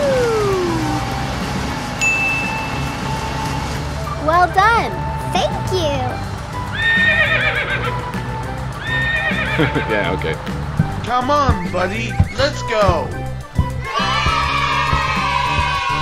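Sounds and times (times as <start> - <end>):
rising and falling pitched glides: 0.0 - 4.6, 10.6 - 16.0
background music: 0.0 - 16.0.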